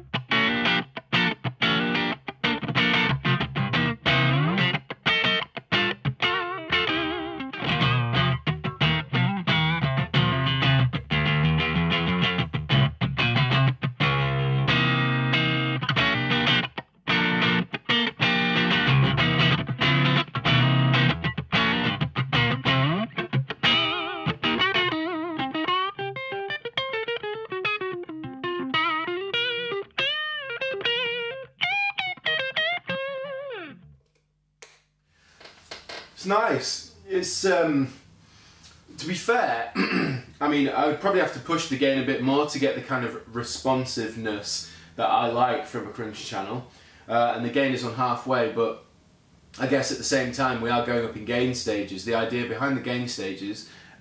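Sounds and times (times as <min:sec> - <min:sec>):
distorted electric guitar: 0:00.0 - 0:34.0.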